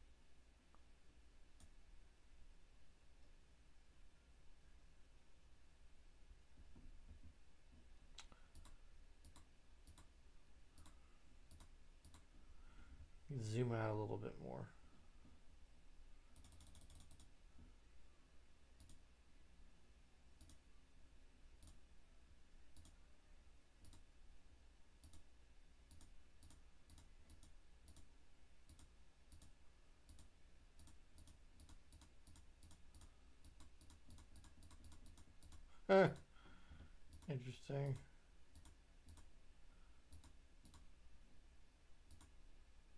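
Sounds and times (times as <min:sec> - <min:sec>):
computer mouse clicks: 0:01.6 - 0:01.8, 0:08.1 - 0:10.1, 0:10.8 - 0:12.3, 0:16.3 - 0:17.3, 0:18.8 - 0:19.0, 0:20.4 - 0:20.6, 0:21.6 - 0:21.8, 0:22.7 - 0:23.0, 0:23.8 - 0:24.1, 0:25.0 - 0:25.3, 0:25.9 - 0:36.3, 0:37.1 - 0:39.3, 0:40.1 - 0:40.9, 0:42.1 - 0:42.4
mouse scroll wheel clicking: 0:16.4 - 0:17.3, 0:25.9 - 0:28.1, 0:30.1 - 0:35.6.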